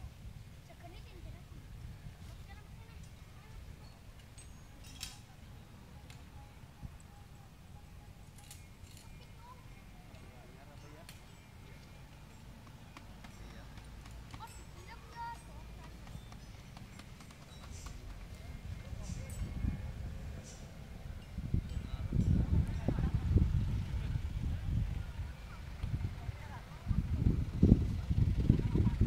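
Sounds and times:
faint voices: 0:00.6 - 0:29.0.

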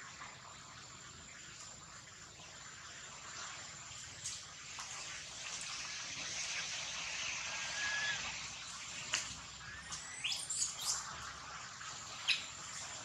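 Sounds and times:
outdoor hiss: 0:00.0 - 0:13.0
birds chirping: 0:09.6 - 0:11.2.

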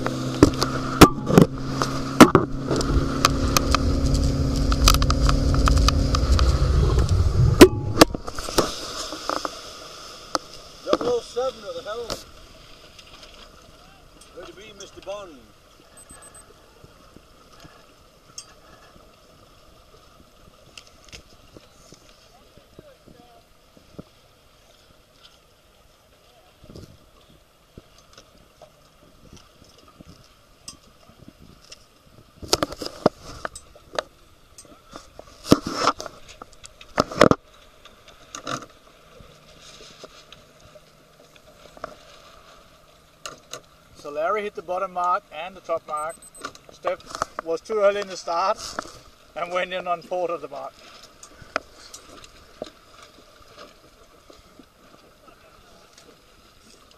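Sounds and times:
wind noise: 0:00.0 - 0:09.4
water noise: 0:00.0 - 0:56.9.

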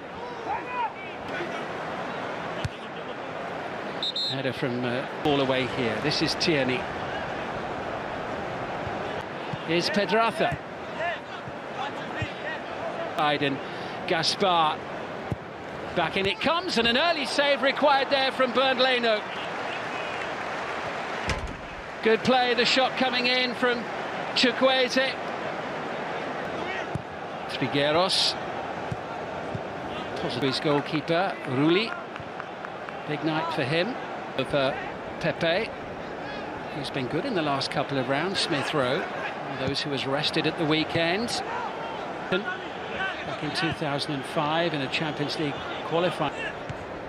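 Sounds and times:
players shouting: 0:00.0 - 0:47.0
stadium ambience hiss: 0:00.1 - 0:47.0
ball kick: 0:26.4 - 0:27.1, 0:46.7 - 0:46.9.

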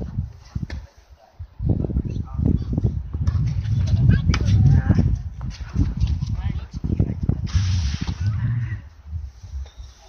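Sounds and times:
people talking: 0:00.5 - 0:02.8, 0:03.8 - 0:09.0.

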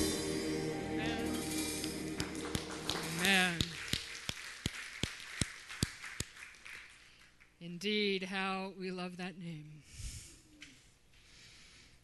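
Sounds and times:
hand claps in a steady beat: 0:01.8 - 0:07.5.

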